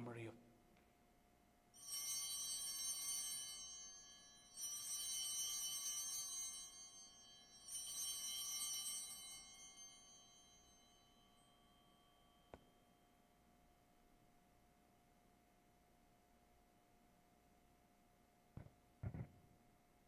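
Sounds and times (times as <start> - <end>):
altar bells ringing: 1.8 - 13.2.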